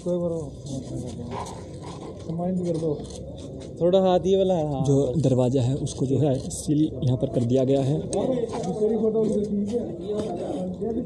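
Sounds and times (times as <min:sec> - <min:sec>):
background noise: 0:00.0 - 0:11.0
men talking: 0:00.0 - 0:11.0.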